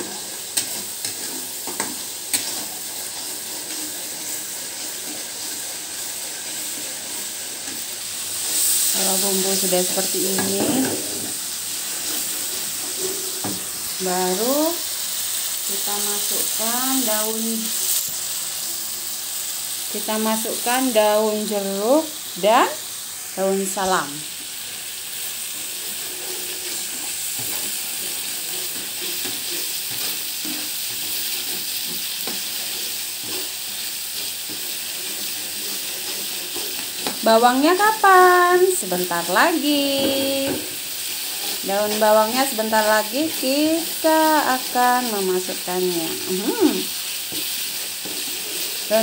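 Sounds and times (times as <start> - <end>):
metal spoon scraping a pan: 0.0 - 13.6, 25.4 - 37.4, 39.8 - 43.7, 45.1 - 49.0
spice paste sizzling in oil: 0.0 - 49.0.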